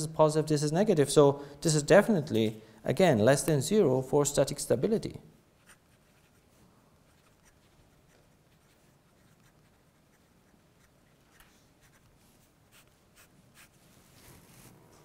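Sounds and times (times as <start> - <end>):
pen scratching on paper: 7.1 - 13.8.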